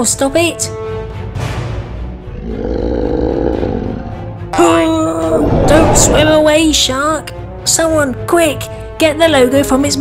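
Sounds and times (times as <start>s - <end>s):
growling roar: 2.3s - 4.4s, 5.1s - 6.5s.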